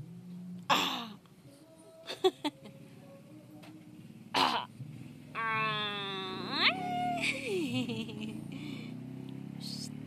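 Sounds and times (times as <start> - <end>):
baby cooing: 5.4 - 7.3.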